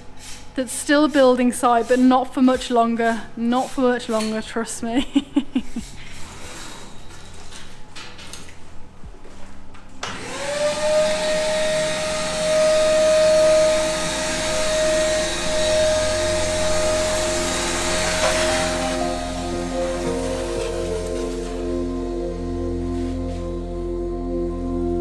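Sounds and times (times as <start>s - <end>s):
shop vacuum motor whine: 10.0s - 25.0s
vacuum suction rush: 10.2s - 22.0s
background music: 15.2s - 25.0s.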